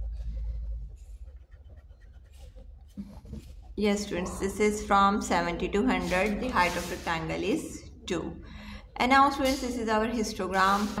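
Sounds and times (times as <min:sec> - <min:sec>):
plastic ruler scraping on paper: 0:00.0 - 0:07.3, 0:10.4 - 0:11.0.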